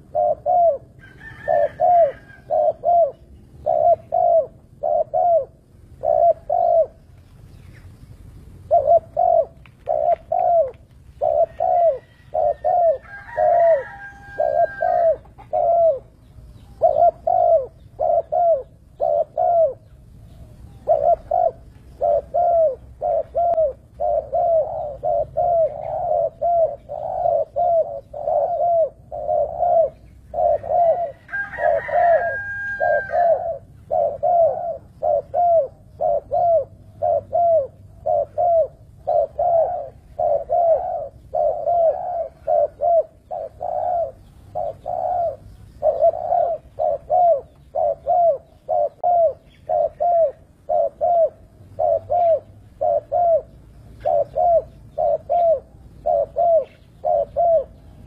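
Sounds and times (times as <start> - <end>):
dove cooing: 0.0 - 58.0.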